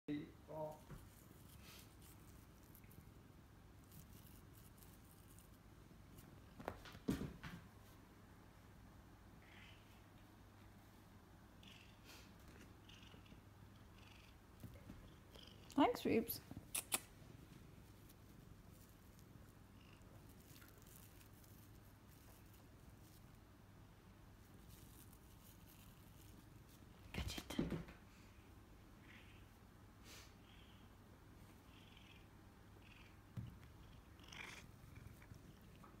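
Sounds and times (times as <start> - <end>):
cat purring: 11.6 - 16.6, 17.5 - 23.4, 30.4 - 36.0.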